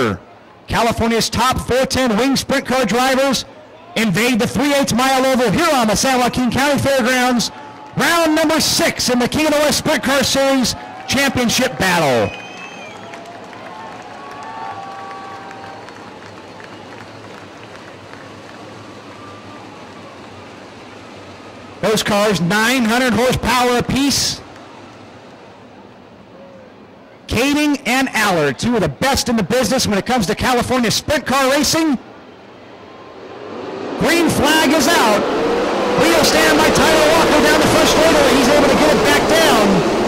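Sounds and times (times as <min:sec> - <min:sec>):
race car engines running: 0:00.0 - 0:26.2, 0:29.7 - 0:40.0
crowd noise: 0:00.0 - 0:40.0
racing car engines running together: 0:32.9 - 0:40.0.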